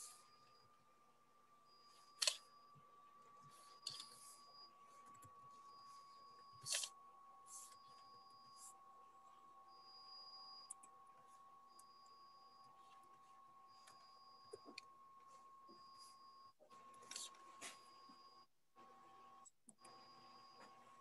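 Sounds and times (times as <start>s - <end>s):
thin high hum: 0.0s - 21.0s.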